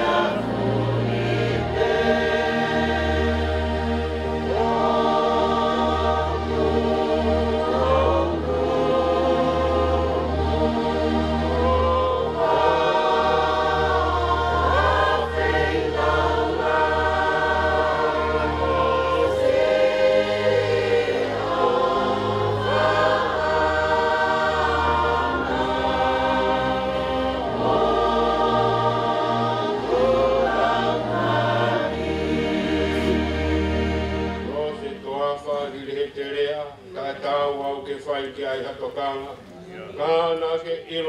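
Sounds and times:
crowd singing a hymn: 0.0s - 37.6s.

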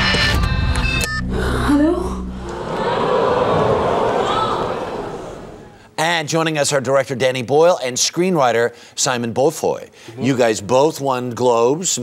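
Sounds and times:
choir-like voices swell: 1.3s - 5.8s.

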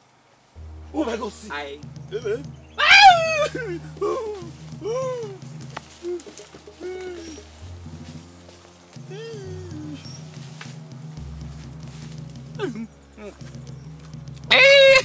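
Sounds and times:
low sustained music notes: 0.0s - 15.0s
loud high cry: 2.8s - 5.4s, 14.5s - 15.0s
cries rising and falling: 2.8s - 7.5s.

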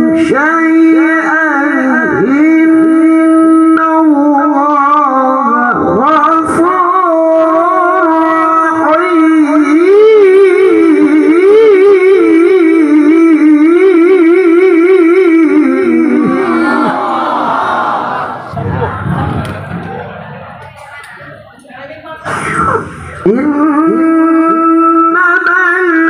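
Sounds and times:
man reciting melodically into microphone: 0.0s - 16.8s, 22.8s - 26.0s.

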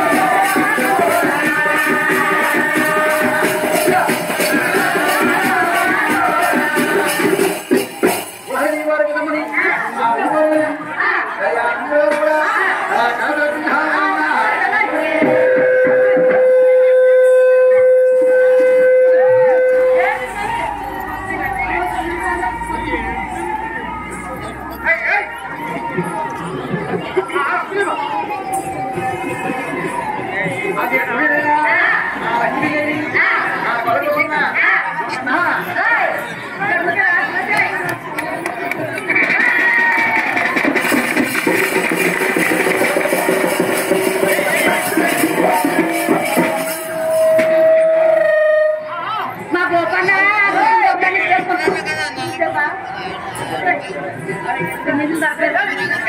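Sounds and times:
voices singing: 0.0s - 8.5s, 9.4s - 17.1s, 28.5s - 47.8s
hand drums beating fast: 0.0s - 8.6s, 38.6s - 47.5s
jingling bells: 0.0s - 9.5s, 38.3s - 47.6s.

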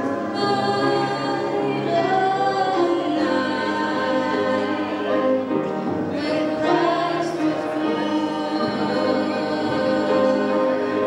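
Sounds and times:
grand piano accompaniment: 0.0s - 11.0s.

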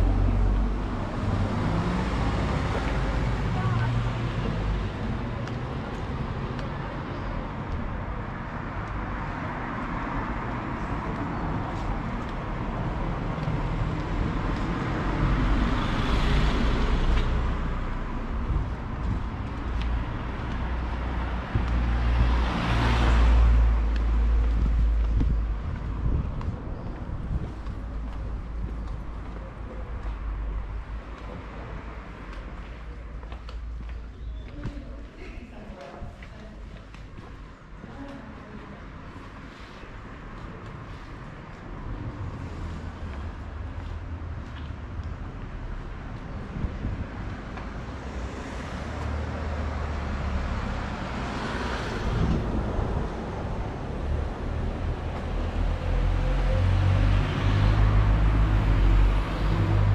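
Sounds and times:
cars passing close by: 0.0s - 34.0s, 36.0s - 59.9s
street noise: 0.0s - 59.9s.

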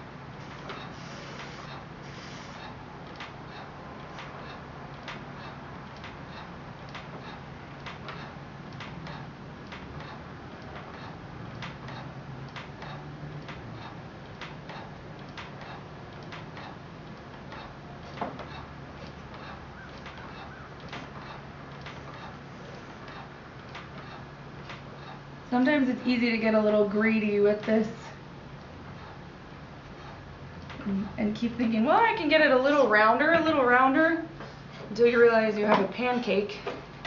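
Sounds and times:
pottery wheel turning: 0.0s - 37.0s
steady low hum: 0.0s - 37.0s.

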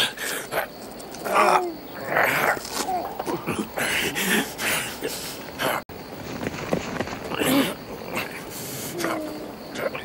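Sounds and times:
men grunting and groaning: 0.0s - 5.9s, 7.4s - 9.9s
scuffling on rocky ground: 6.0s - 7.8s.

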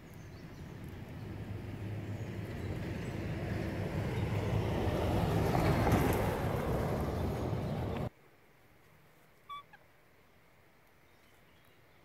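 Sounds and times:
vehicle engine rumbling: 0.0s - 8.1s.

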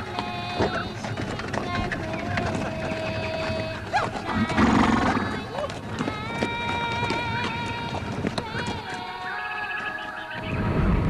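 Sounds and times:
song with sung melody: 0.0s - 10.7s.

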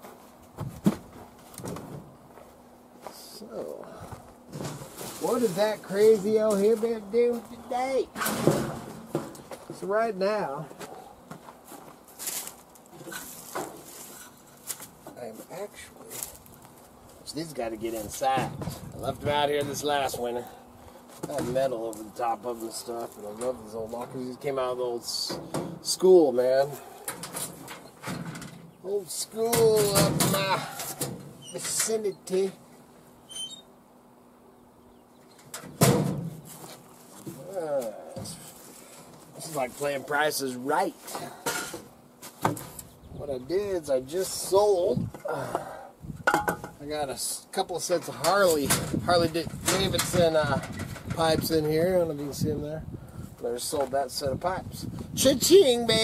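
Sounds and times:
metal locker door opening: 8.2s - 9.3s, 29.5s - 32.0s, 35.5s - 36.3s.

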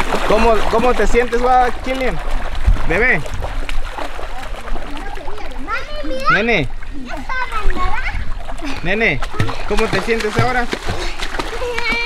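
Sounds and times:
water splashing: 0.0s - 12.0s
young children's voices: 4.3s - 9.7s, 10.9s - 12.0s.

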